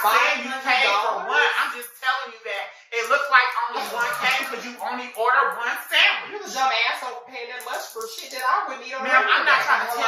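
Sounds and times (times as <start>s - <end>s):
woman talking: 3.8s - 4.6s.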